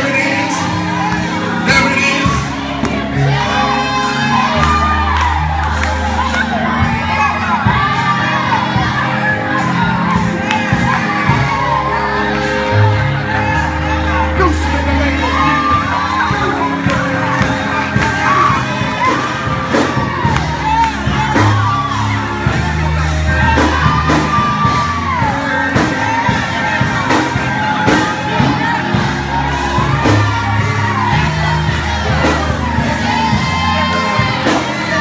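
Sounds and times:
congregation shouting and praising: 0.0s - 35.0s
music: 0.0s - 35.0s.

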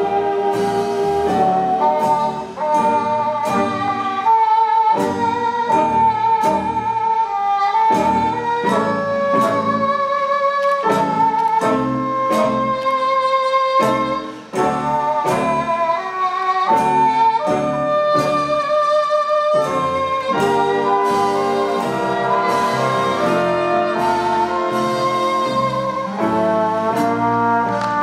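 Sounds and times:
big band jazz ballad: 0.0s - 28.0s.

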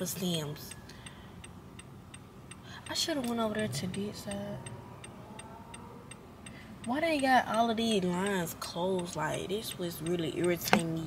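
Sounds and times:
car turn signal ticking: 0.0s - 11.0s.

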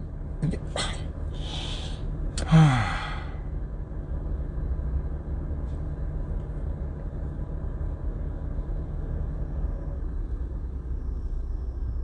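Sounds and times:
low rumble in car cabin: 0.0s - 12.0s
man sighing: 0.8s - 3.4s.

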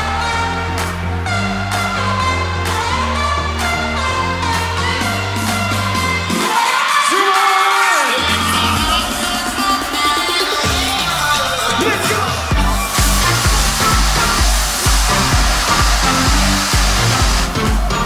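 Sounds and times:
electronic dance music: 0.0s - 18.0s
rising sweeps: 10.2s - 18.0s
heavy kick drum: 12.5s - 18.0s.

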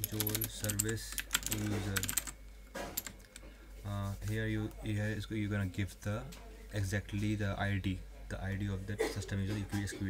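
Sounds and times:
computer keyboard keystrokes: 0.0s - 2.4s.

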